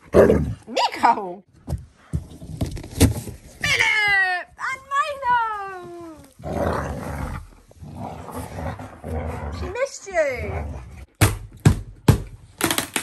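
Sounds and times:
rough rustling noise: 2.3 - 9.4.

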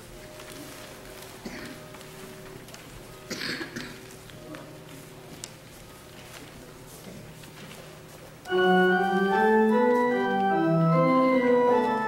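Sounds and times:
organ playing slow chords: 8.5 - 12.0.

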